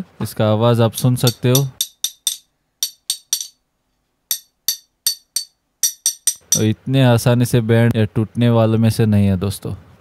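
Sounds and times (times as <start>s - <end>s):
steel tools clinking: 1.3s - 3.6s, 4.3s - 6.7s.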